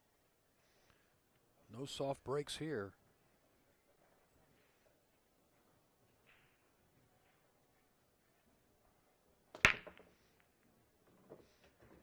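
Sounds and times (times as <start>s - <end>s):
cue ball cracking into racked balls: 9.6s - 10.2s.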